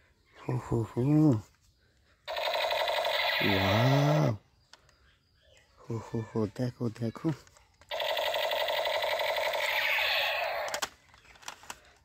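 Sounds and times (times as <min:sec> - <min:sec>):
toy gun electronic firing buzz: 0:02.3 - 0:04.2, 0:07.9 - 0:10.8
plastic toys clicking: 0:07.3 - 0:12.0.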